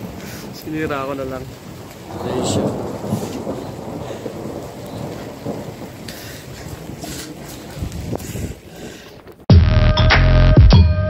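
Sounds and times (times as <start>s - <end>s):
wind buffeting microphone: 0.0s - 9.5s.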